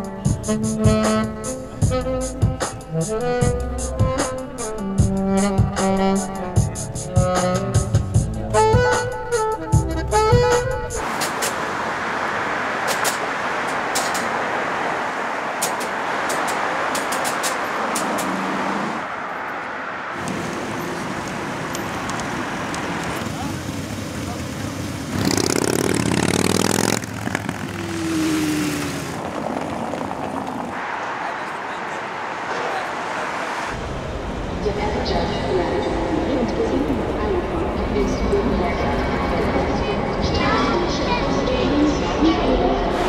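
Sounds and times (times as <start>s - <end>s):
road noise: 0.0s - 43.0s
cars driving past: 11.0s - 40.8s.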